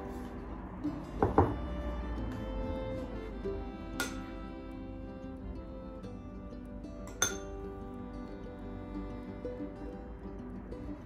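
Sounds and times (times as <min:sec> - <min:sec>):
background music: 0:00.0 - 0:11.0
metal spoon clinking on bowl: 0:07.1 - 0:07.5.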